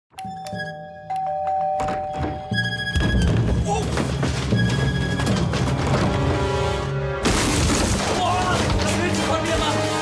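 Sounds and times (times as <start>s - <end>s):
two-tone doorbell chime: 0.2s - 2.9s
music playing: 0.2s - 10.0s.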